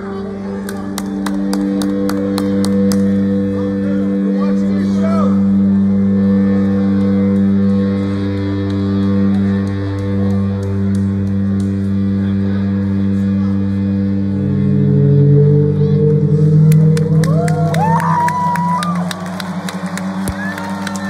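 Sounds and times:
droning low chord: 0:00.0 - 0:21.0
scattered clapping: 0:00.6 - 0:03.4, 0:06.6 - 0:12.2, 0:16.5 - 0:21.0
audience cheering and whooping: 0:16.7 - 0:21.0.

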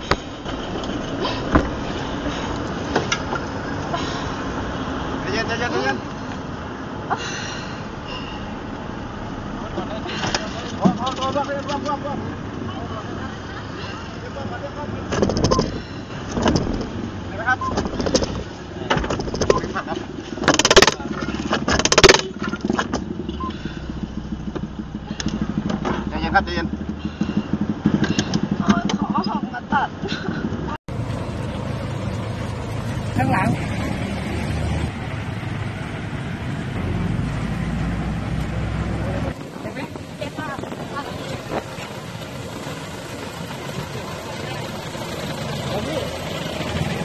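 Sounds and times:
vehicle engine running: 0:00.0 - 0:47.0.

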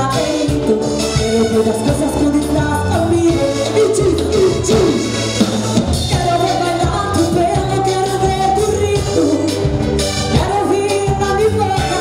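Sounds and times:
woman singing into microphone: 0:00.0 - 0:05.2, 0:06.0 - 0:12.0
drum kit beat: 0:00.0 - 0:12.0
keyboard: 0:00.0 - 0:12.0.

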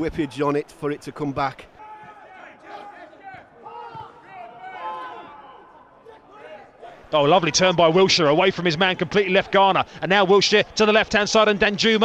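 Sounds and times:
footballers shouting: 0:01.7 - 0:11.7.

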